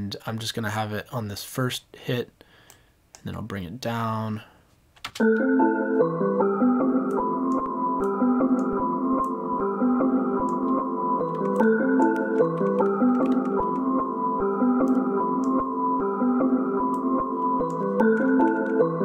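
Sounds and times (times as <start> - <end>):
chopped synth chord loop: 5.2 - 19.0.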